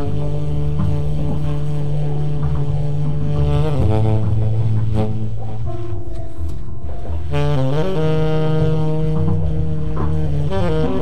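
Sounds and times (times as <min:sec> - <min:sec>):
tenor saxophone low note: 0:00.0 - 0:11.0
upright bass rumble: 0:00.0 - 0:11.0.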